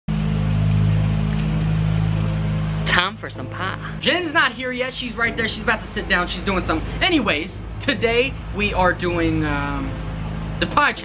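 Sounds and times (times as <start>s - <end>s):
engine humming: 0.1s - 11.0s.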